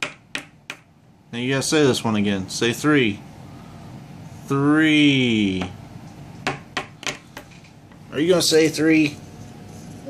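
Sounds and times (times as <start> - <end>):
crayon tapping on wooden table: 0.0 - 0.9, 6.4 - 7.5.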